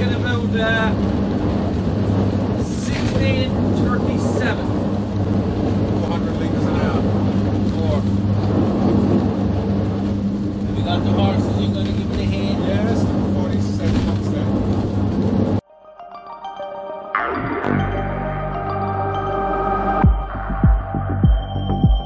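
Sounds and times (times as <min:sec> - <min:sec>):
low engine drone: 0:00.0 - 0:22.0.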